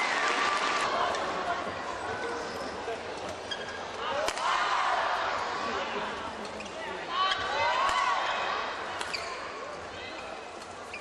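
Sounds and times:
arena crowd noise: 0:00.0 - 0:11.0
shoes squeaking on court: 0:09.0 - 0:09.7.

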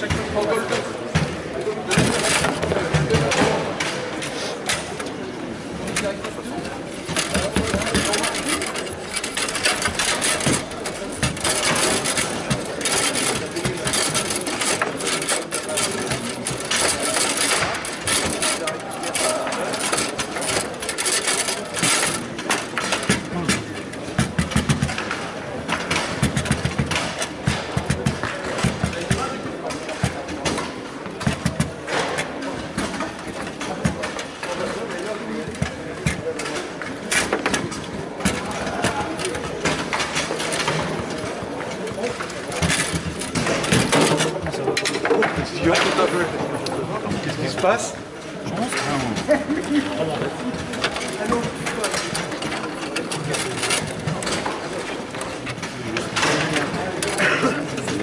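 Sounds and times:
foosball striking and rattling: 0:00.0 - 0:47.2, 0:48.2 - 0:57.0
foosball rods clacking and sliding: 0:00.0 - 0:58.0.

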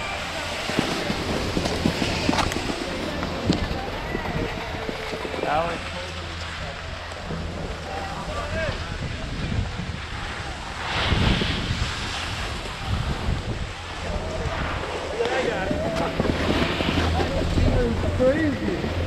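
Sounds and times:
distant voices: 0:00.0 - 0:19.0
skis sliding over snow: 0:00.0 - 0:19.0
wind buffeting microphone: 0:00.0 - 0:19.0.

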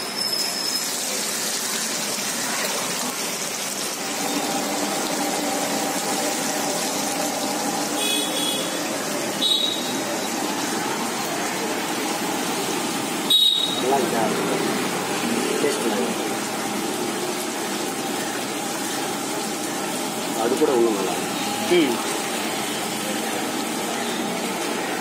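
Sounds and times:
food deep-frying in hot oil: 0:00.0 - 0:25.0.

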